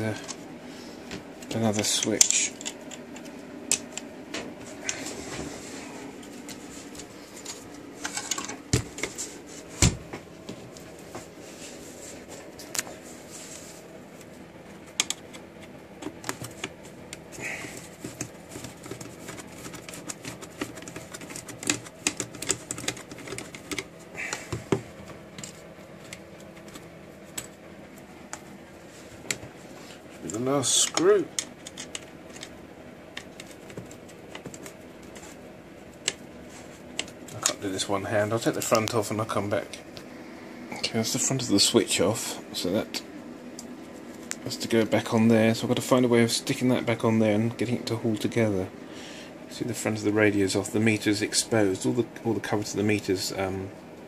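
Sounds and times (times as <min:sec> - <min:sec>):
faint hum: 0:00.0 - 0:54.0.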